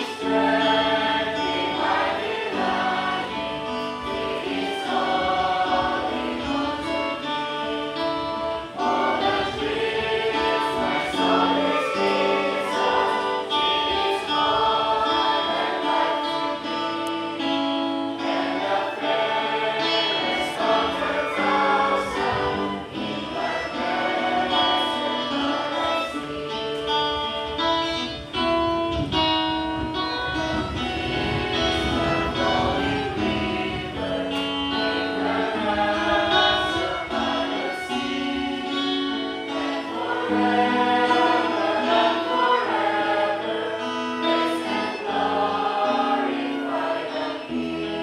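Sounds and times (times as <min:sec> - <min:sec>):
group singing worship song: 0:00.0 - 0:28.0, 0:30.2 - 0:48.0.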